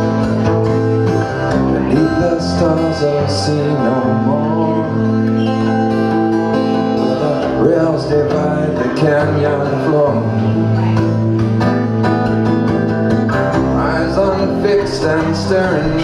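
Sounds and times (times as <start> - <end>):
acoustic guitar chords: 0.0 - 16.0.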